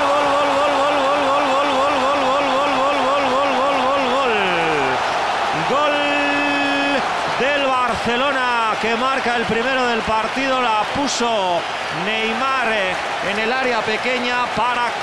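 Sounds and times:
commentator shouting goal: 0:00.0 - 0:15.0
stadium crowd noise: 0:00.0 - 0:15.0.

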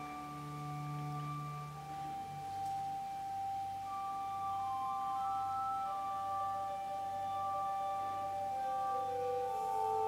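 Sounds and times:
soft organ chords: 0:00.0 - 0:10.0.

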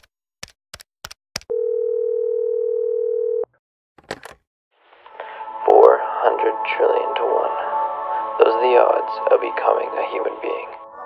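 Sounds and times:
sharp keystroke clicks: 0:00.0 - 0:01.5.

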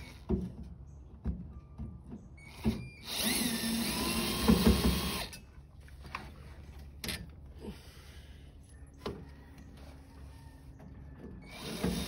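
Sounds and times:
cordless drill spinning: 0:02.5 - 0:05.4.

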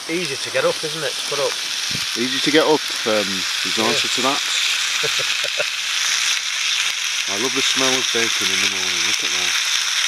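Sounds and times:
bacon sizzling in frying pan: 0:00.0 - 0:10.0.

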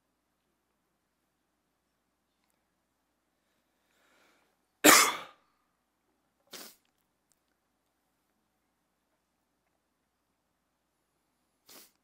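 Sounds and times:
man coughing: 0:04.8 - 0:05.4.

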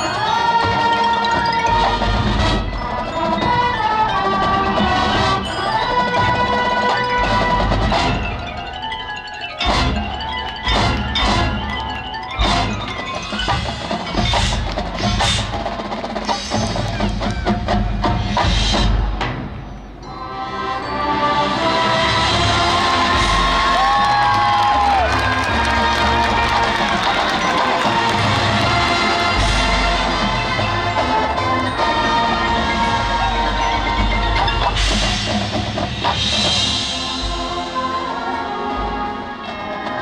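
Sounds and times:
mallet keyboard figures: 0:00.0 - 0:18.0, 0:23.1 - 0:38.1
percussion hits: 0:00.0 - 0:20.0, 0:21.8 - 0:40.0
marching band sustained chords: 0:00.0 - 0:40.0.

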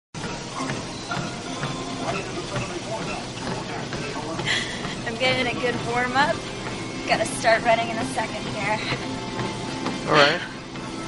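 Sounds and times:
steady background noise: 0:00.2 - 0:11.0.

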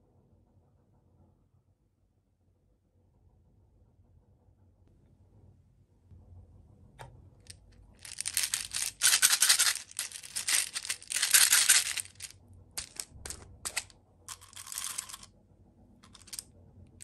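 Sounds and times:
plastic beads rattling in bottle: 0:08.0 - 0:15.3, 0:16.0 - 0:16.4.

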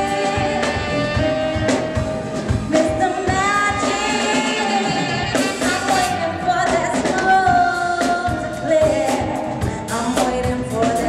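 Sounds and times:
steady drum beat: 0:00.0 - 0:11.0
woman singing into a microphone: 0:00.0 - 0:11.0.

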